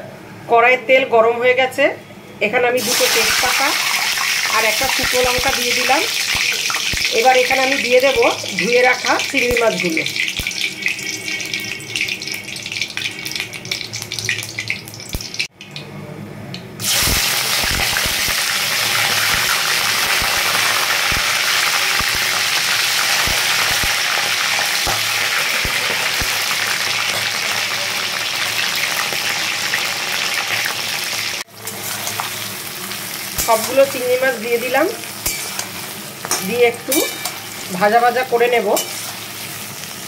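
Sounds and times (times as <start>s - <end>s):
prawns sizzling in hot oil: 2.8s - 15.5s, 16.8s - 40.0s.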